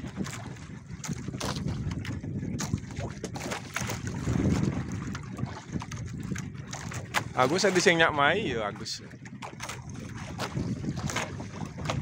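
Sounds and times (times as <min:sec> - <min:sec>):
boat engine running: 0:00.0 - 0:12.0
water washing along hull: 0:00.0 - 0:12.0
wind on microphone: 0:00.0 - 0:12.0.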